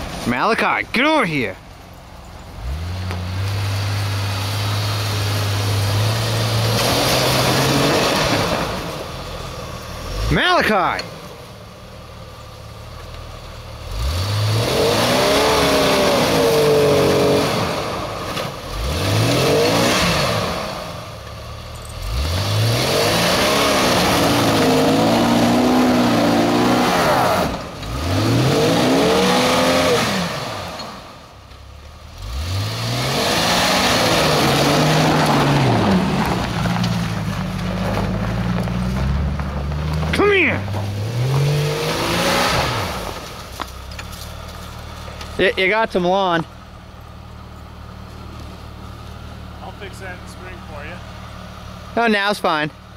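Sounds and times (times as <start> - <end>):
tyres churning in snow: 0.0 - 52.9
car engine revving hard: 2.6 - 9.2, 13.8 - 21.2, 21.9 - 31.2, 32.1 - 43.7.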